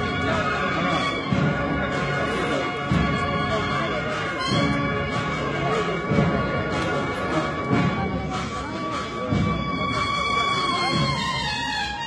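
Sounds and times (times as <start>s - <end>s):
loud low drum beat: 0.0s - 11.7s
drums: 0.0s - 12.0s.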